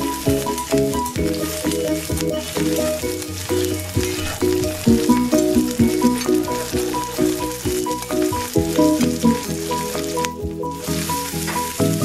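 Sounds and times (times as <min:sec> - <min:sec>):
background music: 0:00.0 - 0:12.0
vegetables sizzling in oil: 0:00.0 - 0:12.0.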